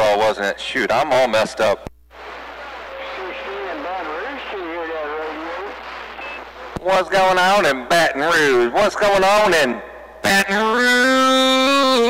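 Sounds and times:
radio static hiss: 0:00.0 - 0:09.8
muffled voice over radio: 0:01.1 - 0:10.4.

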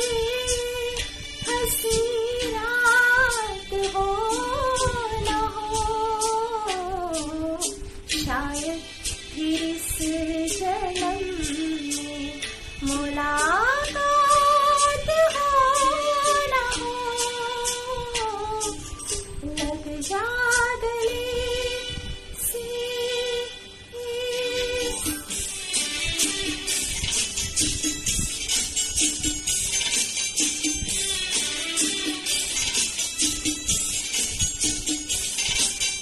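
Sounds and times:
woman singing: 0:00.0 - 0:18.8, 0:19.4 - 0:25.1
backing track with soft beat: 0:00.0 - 0:23.4, 0:24.1 - 0:36.0.

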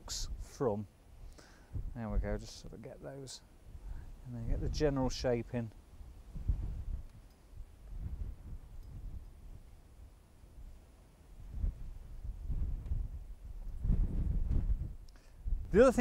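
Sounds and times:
wind buffeting microphone: 0:01.7 - 0:02.8, 0:03.6 - 0:16.0.

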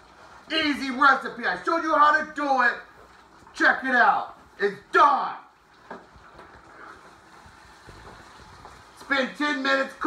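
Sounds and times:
food sizzling in skillet: 0:05.6 - 0:10.0.

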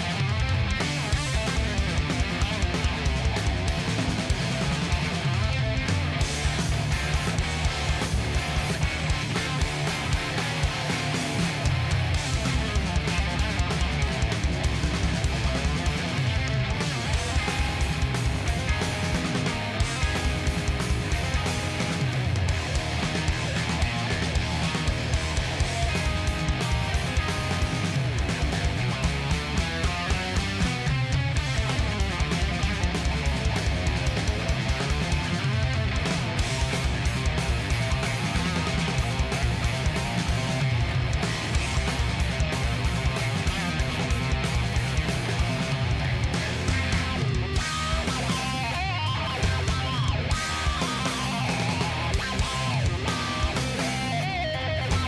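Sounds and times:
drum kit beat: 0:00.0 - 0:55.0
electric bass: 0:00.0 - 0:55.0
electric guitar: 0:00.0 - 0:55.0.

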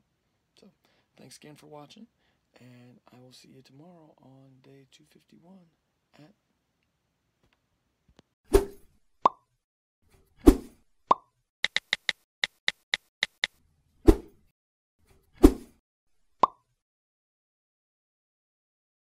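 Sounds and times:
sharp clicks: 0:11.6 - 0:13.5.

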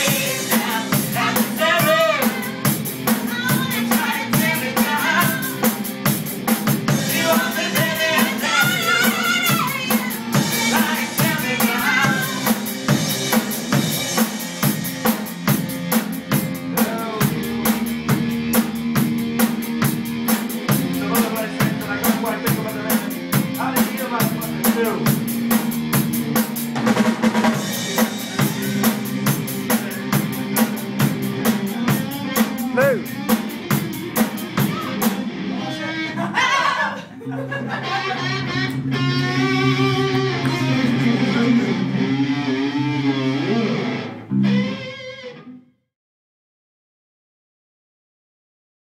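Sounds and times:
drum kit: 0:00.0 - 0:35.6, 0:37.9 - 0:44.8
electric bass: 0:00.0 - 0:36.3, 0:37.6 - 0:45.6
electric guitar: 0:00.0 - 0:45.8.

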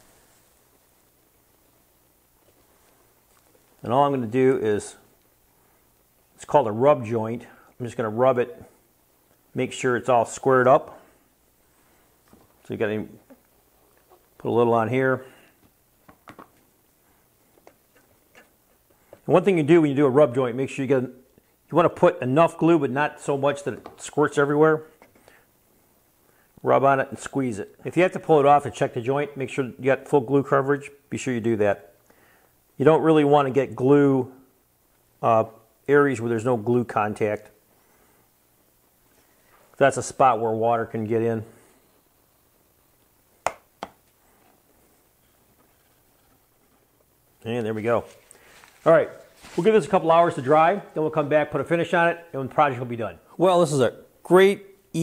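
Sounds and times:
plastic bottle clicks on wood: 0:43.4 - 0:44.0.

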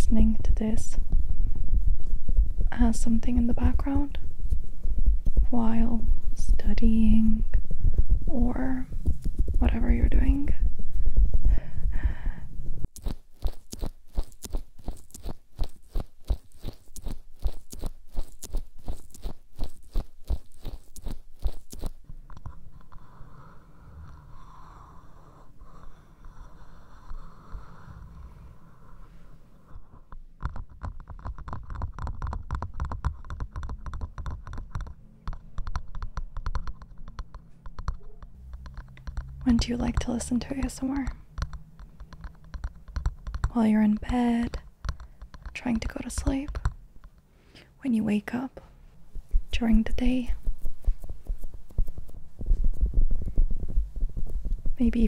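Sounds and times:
rapid crackling and scratching clicks: 0:07.5 - 0:10.3, 0:12.9 - 0:23.0, 0:30.0 - 0:47.3, 0:49.2 - 0:55.0
soft rustle: 0:12.6 - 0:23.0, 0:48.5 - 0:55.0.

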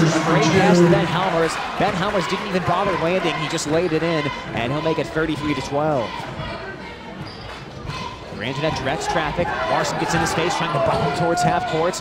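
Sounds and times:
gymnasium noise: 0:00.0 - 0:12.0.

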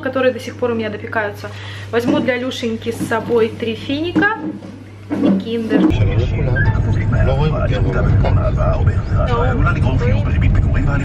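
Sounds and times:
car rumble from inside cabin: 0:05.9 - 0:11.0.

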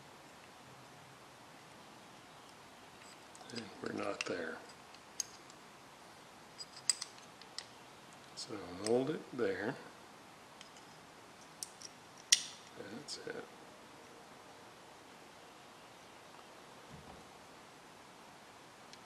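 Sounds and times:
small metallic clicks: 0:02.4 - 0:05.6, 0:06.6 - 0:09.0, 0:10.6 - 0:12.8.

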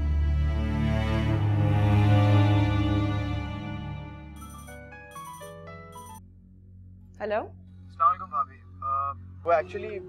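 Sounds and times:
background music: 0:00.0 - 0:10.0
phone ringtone melody: 0:04.4 - 0:06.2.

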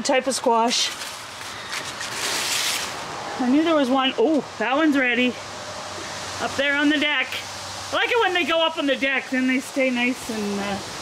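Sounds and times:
leaves and vines rustling: 0:00.4 - 0:04.6.

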